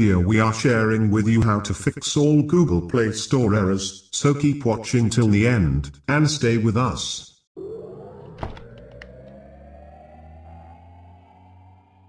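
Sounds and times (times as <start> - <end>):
low hum: 7.6 - 12.0
synthetic tone gliding upward: 7.6 - 12.0.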